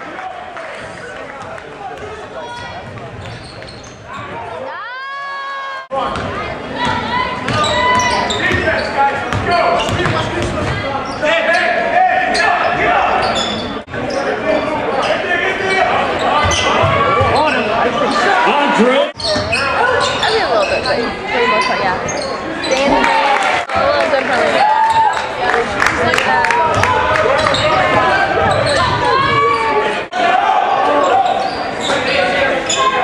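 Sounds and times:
voices in echoing gym: 0.1 - 33.0.

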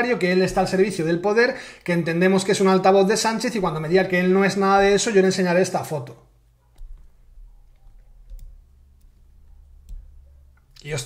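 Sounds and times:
steady low hum: 6.3 - 11.0.

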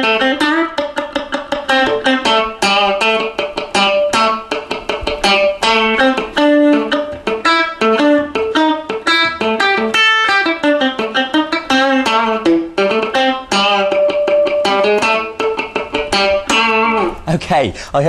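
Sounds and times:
funky electric guitar: 0.0 - 17.3.

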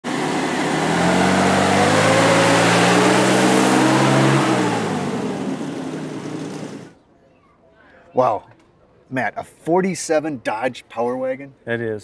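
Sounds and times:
truck engine driving past: 0.1 - 7.0.

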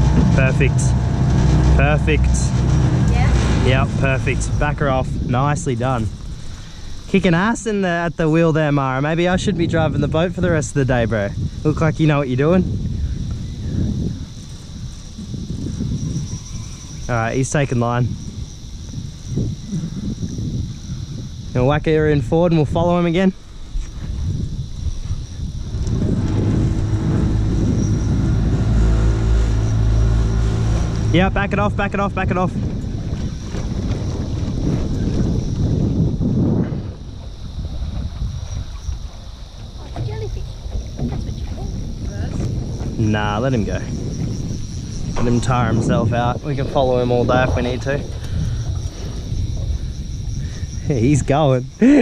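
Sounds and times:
boat motor low hum: 0.0 - 52.0
wind buffeting microphone: 0.0 - 52.0.

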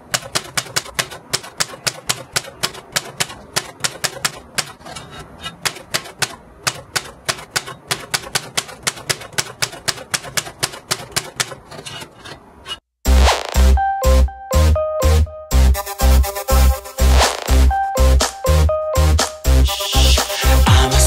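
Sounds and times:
typewriter keys clacking: 0.0 - 11.6.

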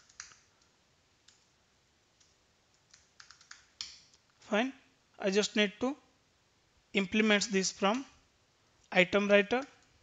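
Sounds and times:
computer keyboard keystrokes: 0.0 - 0.6, 2.2 - 4.1.

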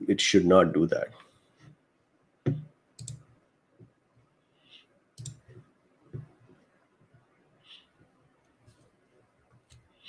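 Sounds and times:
sharp computer mouse clicks: 3.0 - 3.2, 4.7 - 5.4.

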